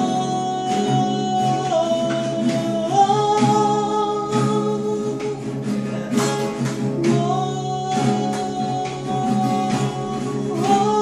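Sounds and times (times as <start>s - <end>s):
acoustic guitars strumming: 0.0s - 11.0s
person singing: 0.0s - 11.0s.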